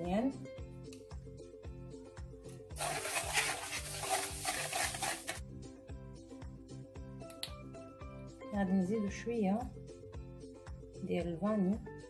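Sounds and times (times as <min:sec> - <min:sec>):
background music with steady beat: 0:00.0 - 0:12.0
eggs beaten in a bowl: 0:02.8 - 0:05.4.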